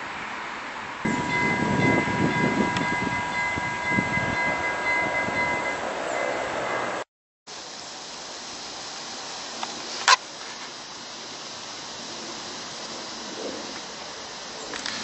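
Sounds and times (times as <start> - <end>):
rushing noise: 0.0 - 15.0
level crossing warning bell: 1.0 - 7.0.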